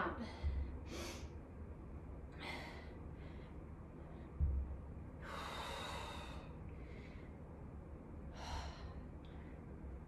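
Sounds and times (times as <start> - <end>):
woman breathing hard: 0.2 - 1.4, 2.3 - 7.5, 8.3 - 9.9.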